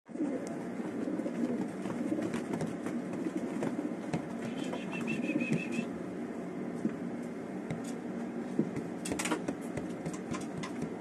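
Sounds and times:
pigeons cooing: 0:00.1 - 0:06.0.

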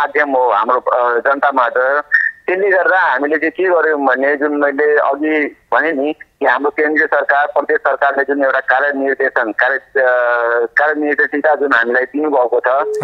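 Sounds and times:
man talking over telephone line: 0:00.0 - 0:13.0.

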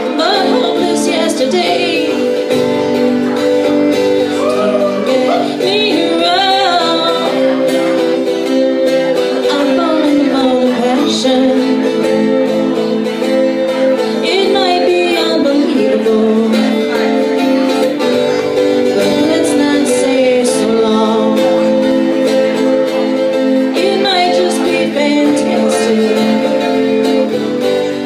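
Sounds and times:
woman singing: 0:00.0 - 0:17.9, 0:18.8 - 0:28.0
acoustic guitar: 0:00.0 - 0:28.0.

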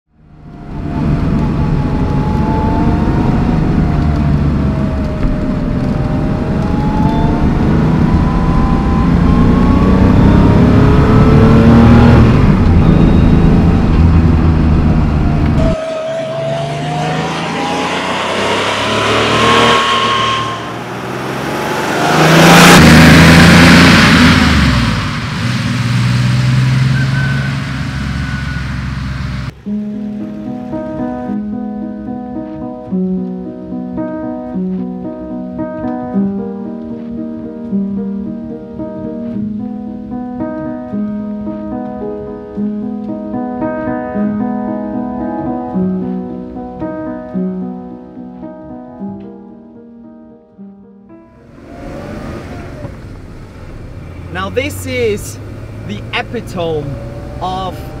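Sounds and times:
car engine revving through gears: 0:00.4 - 0:29.6, 0:51.4 - 0:58.0.

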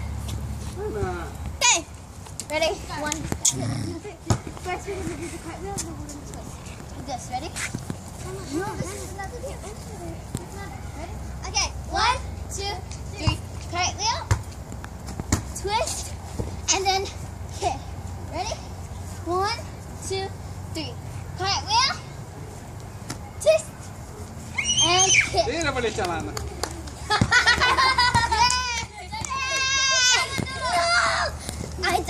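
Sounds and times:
girls calling out while playing: 0:01.6 - 0:06.5, 0:24.4 - 0:25.6, 0:28.2 - 0:32.0
girl squealing: 0:24.5 - 0:25.4.

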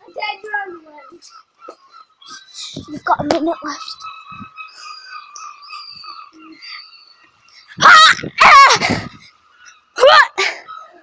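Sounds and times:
child crying out: 0:07.8 - 0:09.1.

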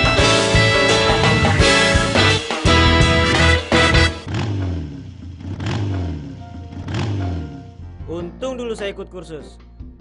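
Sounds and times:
background music: 0:00.0 - 0:04.8, 0:05.5 - 0:10.0
engine revving: 0:01.0 - 0:07.8.

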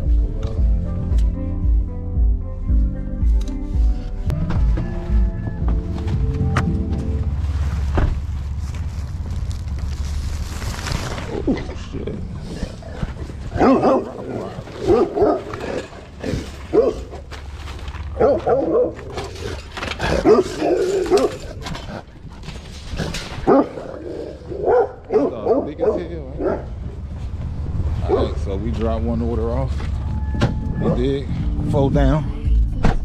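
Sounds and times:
steady low rumble: 0:00.0 - 0:32.9
dog barking: 0:13.5 - 0:15.6, 0:16.7 - 0:17.1, 0:18.2 - 0:19.2, 0:20.1 - 0:21.4, 0:23.4 - 0:26.7, 0:28.1 - 0:28.4.

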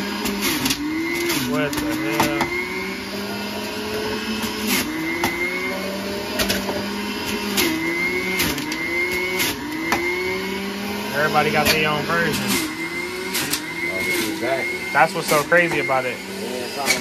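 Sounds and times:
juicer motor running: 0:00.0 - 0:17.0.

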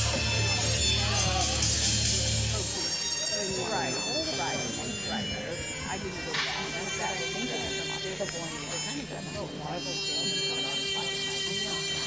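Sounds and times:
chatter of voices: 0:00.0 - 0:12.0
routine music playing: 0:00.0 - 0:12.0.

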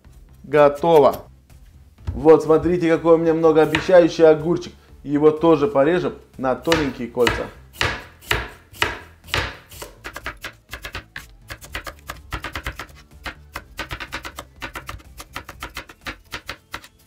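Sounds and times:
knife chopping on wooden board: 0:03.6 - 0:04.0, 0:06.7 - 0:17.0.

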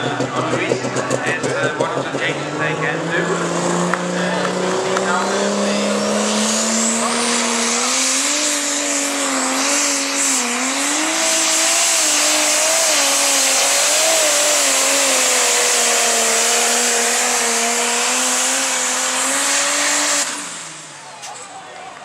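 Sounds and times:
diesel tractor engine under load: 0:00.0 - 0:22.0.

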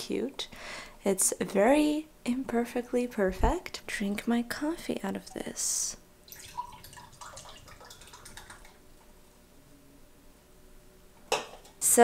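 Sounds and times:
liquid pouring into a mug: 0:06.3 - 0:08.8.

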